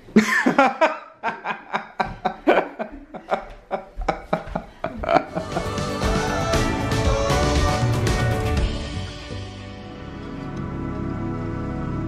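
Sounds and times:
person chuckling: 0.1s - 6.0s.

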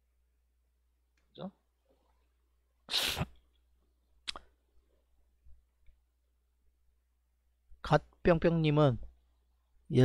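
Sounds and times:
man sneezing: 2.9s - 3.4s.

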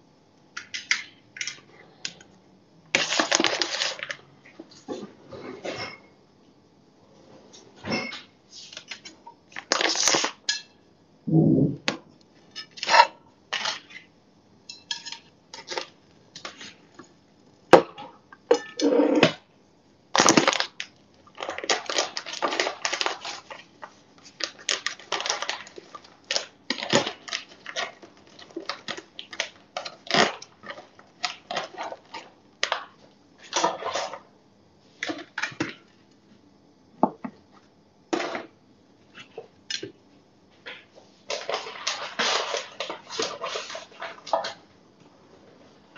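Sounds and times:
plastic bag crinkling: 3.0s - 4.2s, 20.2s - 32.3s.

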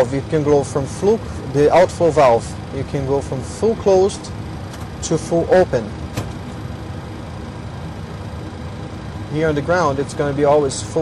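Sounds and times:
air conditioning rush: 0.0s - 11.0s.

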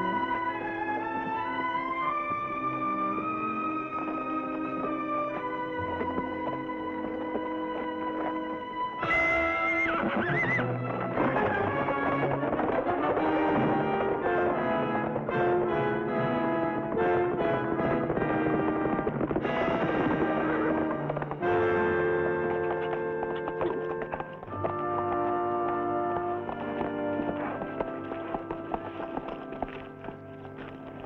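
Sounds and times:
dramatic orchestral music: 0.0s - 31.0s
hoofbeats: 0.0s - 31.0s
horse whinnying: 4.5s - 16.0s.

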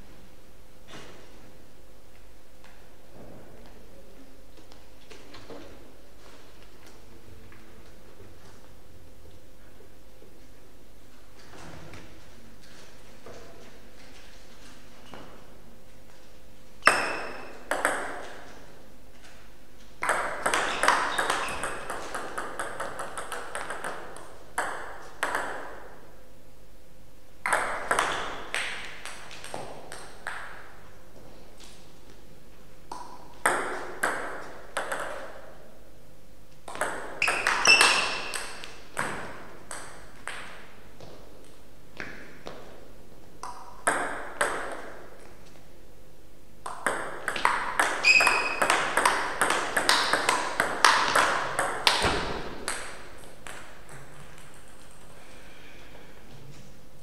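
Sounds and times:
table tennis ball clicking: 20.0s - 25.7s, 36.7s - 40.5s.

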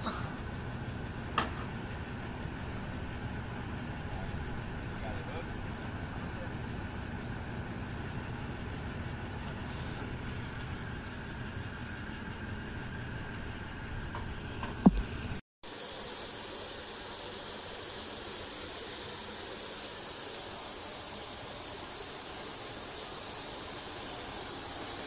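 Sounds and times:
motor engine idling: 0.0s - 15.4s, 16.6s - 25.0s.

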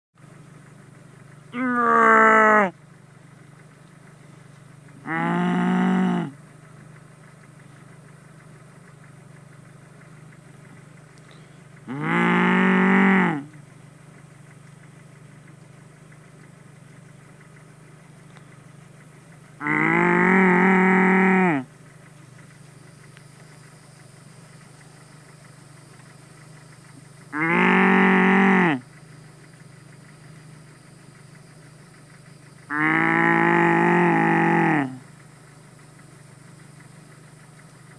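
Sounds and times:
person mooing loudly: 1.6s - 2.7s, 5.0s - 6.4s, 11.9s - 13.5s, 19.6s - 21.6s, 27.4s - 28.8s, 32.7s - 35.0s.

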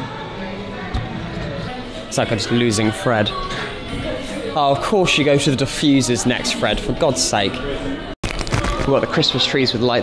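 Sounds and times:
indistinct voices in shop: 0.0s - 10.0s.

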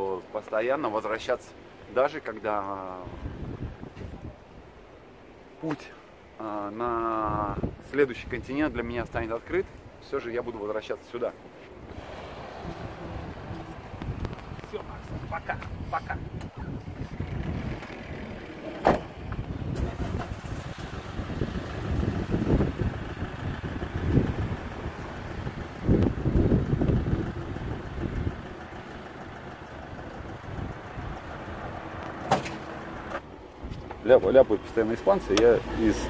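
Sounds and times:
van engine rumbling: 0.0s - 36.0s
sliding van door banging shut: 18.6s - 19.8s, 32.2s - 32.7s.

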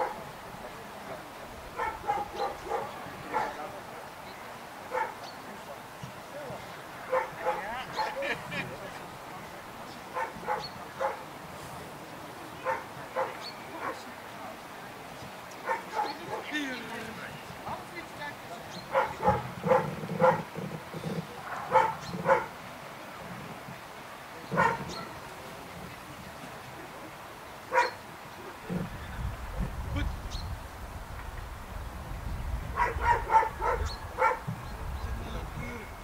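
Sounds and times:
dog barking: 0.0s - 0.3s, 1.8s - 3.7s, 4.9s - 5.2s, 7.1s - 8.2s, 10.1s - 11.2s, 12.6s - 14.1s, 15.6s - 16.5s, 18.9s - 20.5s, 21.4s - 22.5s, 24.5s - 25.2s, 27.7s - 28.0s, 32.7s - 34.5s.

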